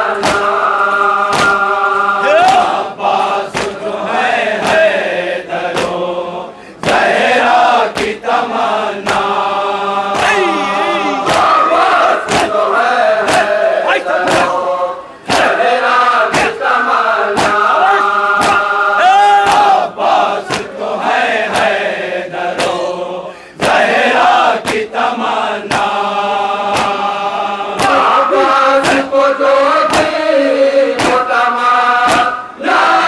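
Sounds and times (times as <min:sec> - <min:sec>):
men chanting in unison: 0:00.0 - 0:33.0.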